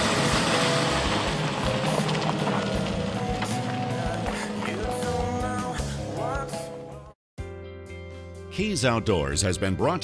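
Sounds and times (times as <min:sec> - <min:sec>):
car engine and tyres: 0:00.0 - 0:07.1
music playing: 0:00.0 - 0:10.0.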